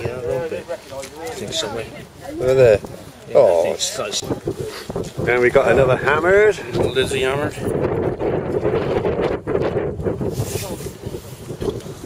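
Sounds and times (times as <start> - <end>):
faint voices: 0.0 - 7.8
wind buffeting microphone: 0.0 - 12.0.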